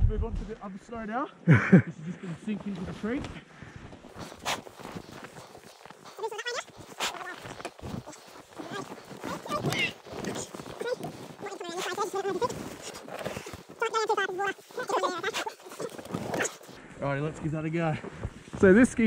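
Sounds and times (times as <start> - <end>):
snow crunching: 0.2 - 19.0
people laughing: 1.4 - 2.3
clothing rustling: 2.6 - 16.8
strained voices: 4.1 - 16.8.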